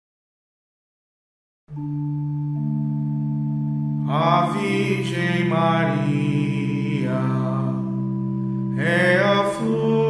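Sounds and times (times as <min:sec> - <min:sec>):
sustained accompaniment chords: 0:01.7 - 0:10.0
person chanting: 0:04.0 - 0:10.0.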